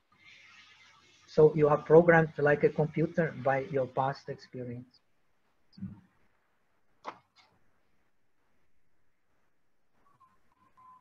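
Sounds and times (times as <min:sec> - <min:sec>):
faint broken beep-like tone: 0:10.0 - 0:11.0.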